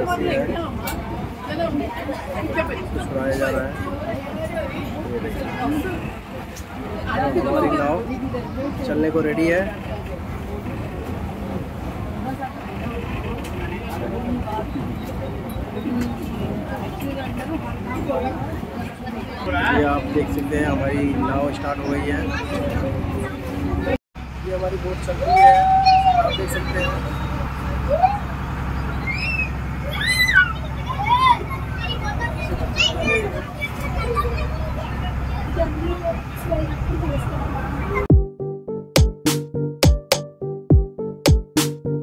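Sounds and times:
boat engine idling: 0:00.0 - 0:38.1
passengers chattering: 0:00.0 - 0:38.1
voices calling out: 0:00.0 - 0:38.1.

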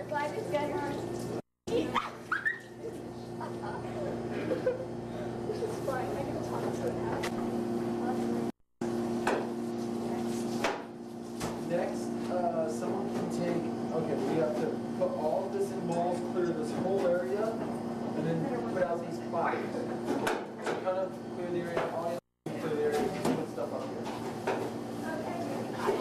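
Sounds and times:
indistinct voices in a room: 0:09.7 - 0:26.0.

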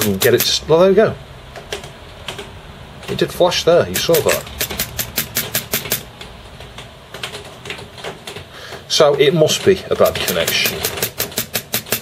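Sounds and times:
fingertip tapping keyboard keys: 0:00.0 - 0:00.6, 0:01.5 - 0:03.2, 0:03.9 - 0:12.0.

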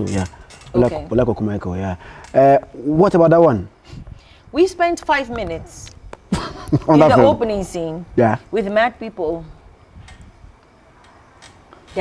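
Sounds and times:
faint background noise: 0:00.0 - 0:12.0.

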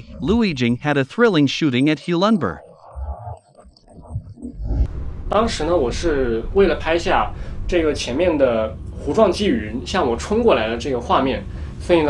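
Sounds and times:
low rumble: 0:02.6 - 0:11.6.

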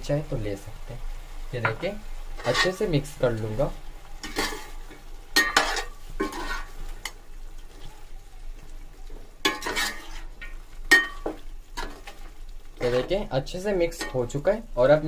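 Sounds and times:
metal spoon scraping a pot: 0:02.4 - 0:02.9, 0:04.2 - 0:07.2, 0:09.5 - 0:12.2.

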